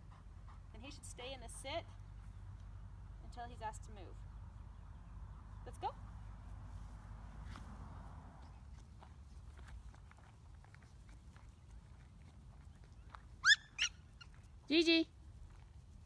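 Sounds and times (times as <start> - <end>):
footsteps on gravel: 8.5 - 13.4
puppy yipping: 13.4 - 14.4.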